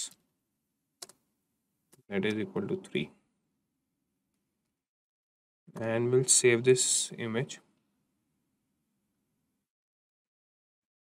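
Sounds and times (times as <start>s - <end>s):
keyboard clicks: 1.0s - 1.2s.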